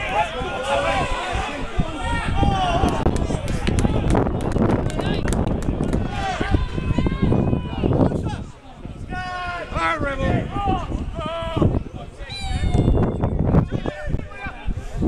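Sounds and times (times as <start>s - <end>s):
people shouting: 0.0s - 3.5s, 6.0s - 8.4s.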